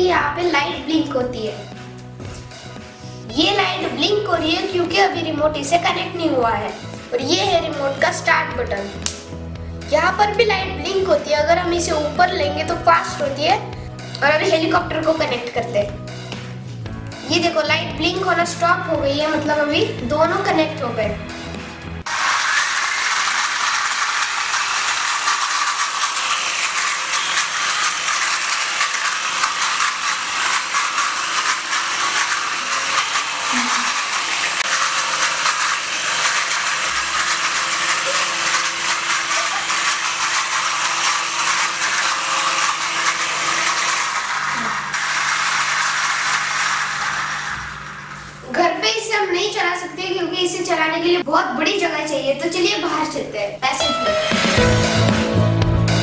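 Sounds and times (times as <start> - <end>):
toy helicopter rotor whirring: 3.4 - 9.0, 22.0 - 48.5.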